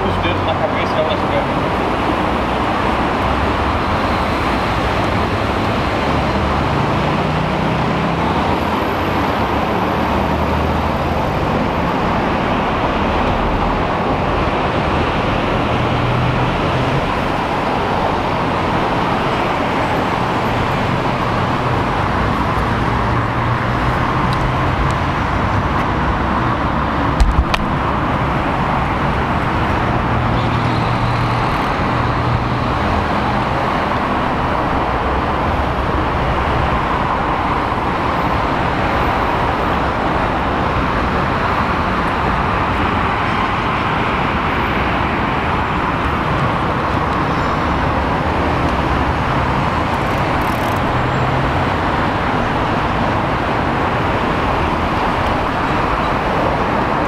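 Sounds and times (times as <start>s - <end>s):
highway traffic noise: 0.0s - 57.0s.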